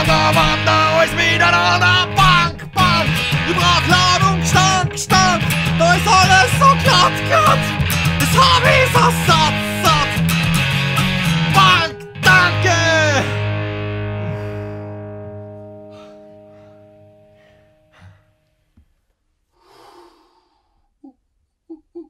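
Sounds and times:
loud singing: 0:00.0 - 0:10.2, 0:11.5 - 0:13.4
punk rock guitar: 0:00.0 - 0:17.2.

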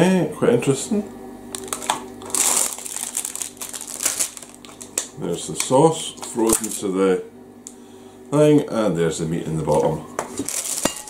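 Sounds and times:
packaging rustling and crinkling: 0:01.5 - 0:06.9, 0:09.7 - 0:11.0.

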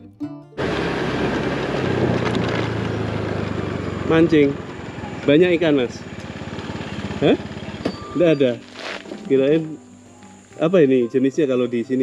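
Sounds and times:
guitar music: 0:00.0 - 0:02.2, 0:07.2 - 0:12.0
wind and road noise: 0:00.6 - 0:09.9
motorcycle engine running: 0:00.6 - 0:10.5.

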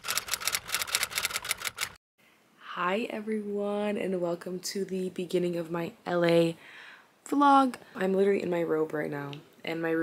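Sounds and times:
typewriter keys clacking: 0:00.0 - 0:02.0.

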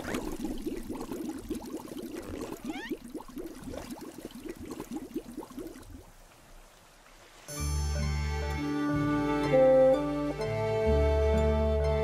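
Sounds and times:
water bubbling and gurgling: 0:00.0 - 0:06.4.

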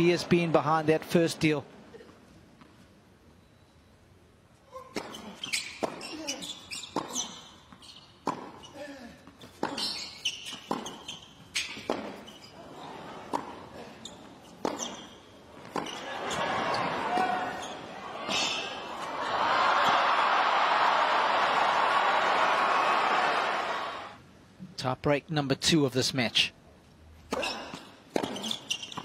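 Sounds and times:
crowd noise: 0:00.0 - 0:01.9, 0:15.5 - 0:24.2
racket hitting tennis ball: 0:04.9 - 0:07.4, 0:08.2 - 0:08.6, 0:09.4 - 0:12.3, 0:13.2 - 0:13.6, 0:14.6 - 0:19.1, 0:27.3 - 0:29.0
tennis ball bouncing: 0:04.9 - 0:12.4, 0:13.2 - 0:13.6, 0:14.5 - 0:19.1, 0:27.3 - 0:29.0.

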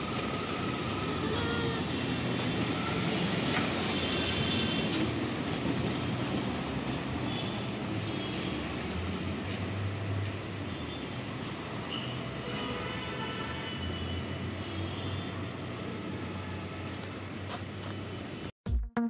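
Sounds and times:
street traffic rumble: 0:00.0 - 0:18.6.

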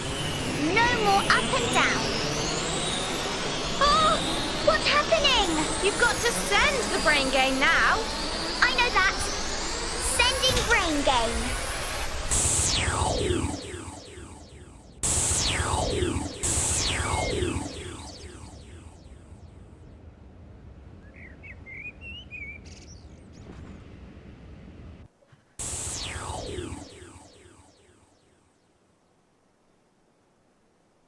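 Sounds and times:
twittering chirp: 0:21.0 - 0:23.3.

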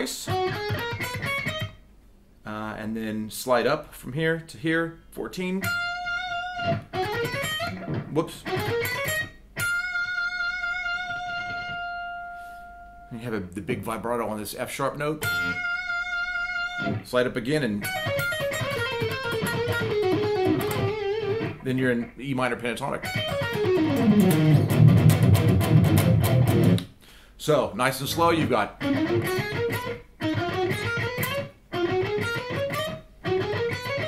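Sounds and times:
electric guitar fast picked notes: 0:23.1 - 0:26.8.

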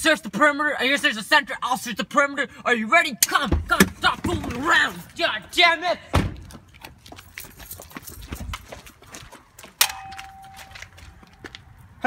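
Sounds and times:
footsteps: 0:06.3 - 0:12.0.

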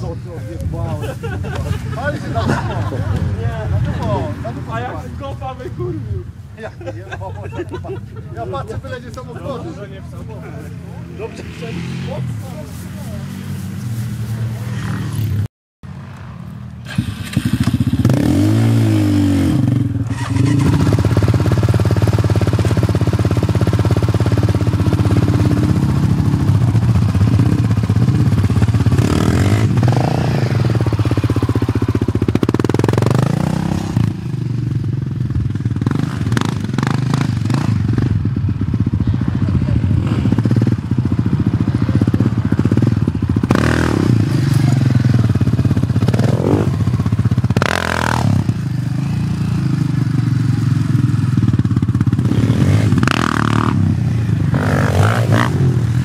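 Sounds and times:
quad engine revving: 0:16.8 - 0:56.0.

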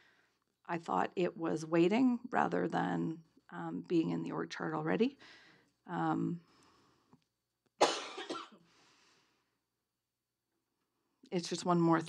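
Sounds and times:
woman coughing: 0:07.8 - 0:08.6.

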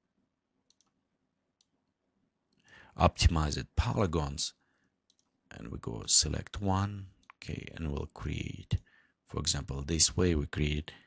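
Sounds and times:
faint computer mouse clicks: 0:00.7 - 0:01.0, 0:05.1 - 0:05.3.

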